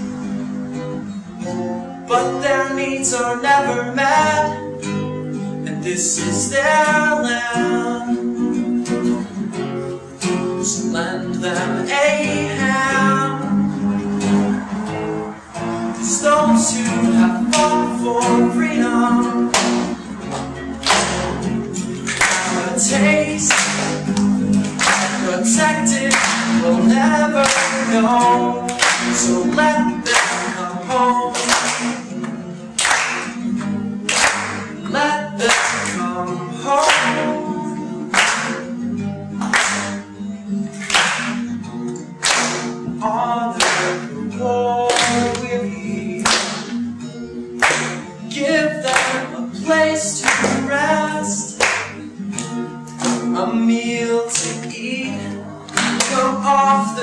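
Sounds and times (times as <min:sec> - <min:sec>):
acoustic guitar: 0:00.0 - 0:57.0
voices singing wordless melody: 0:15.3 - 0:19.5, 0:22.0 - 0:24.0, 0:24.8 - 0:31.8, 0:34.7 - 0:38.4, 0:43.0 - 0:46.7, 0:48.3 - 0:51.6
sharp rhythmic strokes: 0:20.8 - 0:36.1.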